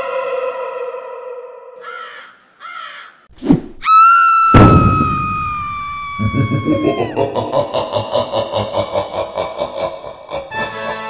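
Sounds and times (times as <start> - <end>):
sharp thump: 4.6 - 5.4
loud crash: 4.6 - 5.8
music: 10.5 - 11.0.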